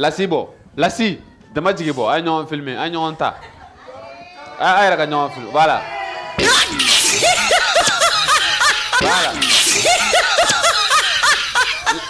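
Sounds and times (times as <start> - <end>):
person laughing loudly: 6.4 - 12.0.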